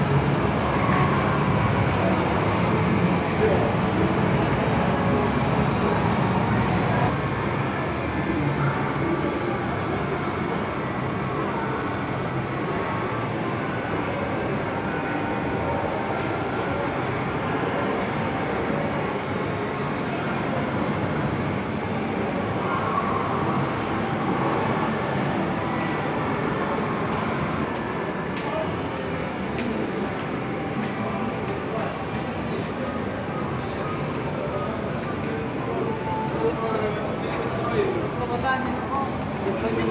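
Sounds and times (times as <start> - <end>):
distant crowd voices: 0.0 - 39.9
faint background music: 0.0 - 39.9.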